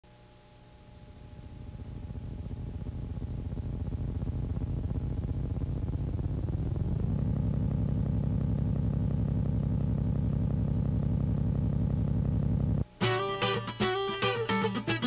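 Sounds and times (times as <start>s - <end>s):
faint high whine: 0.1s - 15.0s
low pulsing engine-like rumble: 0.8s - 12.8s.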